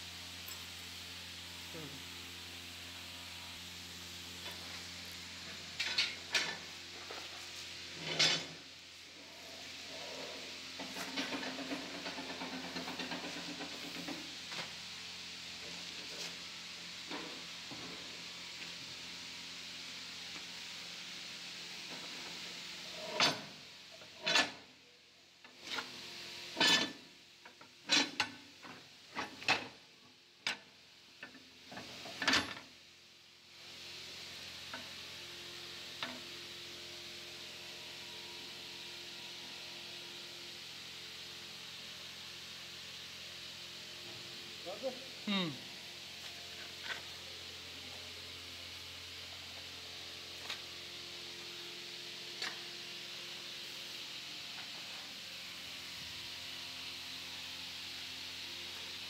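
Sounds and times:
steady hiss: 0.0s - 59.0s.

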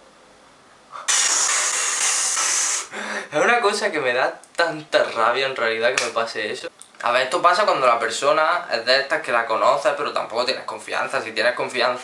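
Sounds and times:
loud static hiss: 0.0s - 12.0s.

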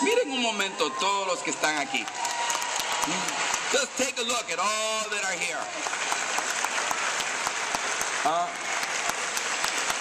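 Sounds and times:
large crowd applauding: 0.0s - 10.0s.

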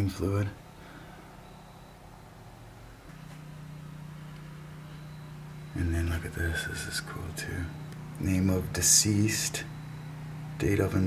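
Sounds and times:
low mechanical hum: 0.0s - 11.0s
steady tone: 0.5s - 11.0s.

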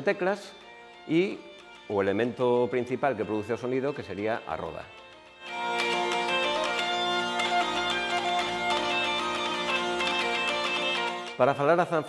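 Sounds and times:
hurdy-gurdy melody with drone: 0.0s - 12.0s.

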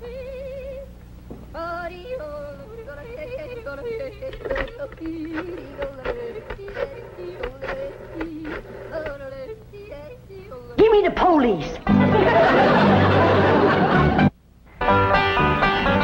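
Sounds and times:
woman yodeling: 1.6s - 10.8s
audience laughter: 11.8s - 14.3s.

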